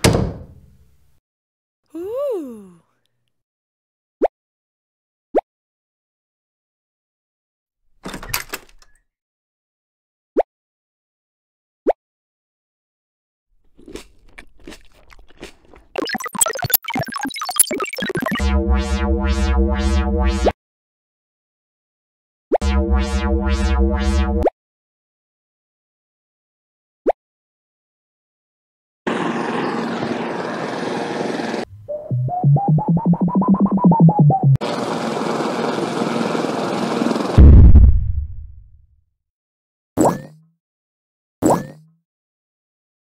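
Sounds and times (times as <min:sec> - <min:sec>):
crunchy chewing: 0:13.7 - 0:16.0
electronic beeps: 0:16.0 - 0:20.1
bright synth melody: 0:16.0 - 0:20.5.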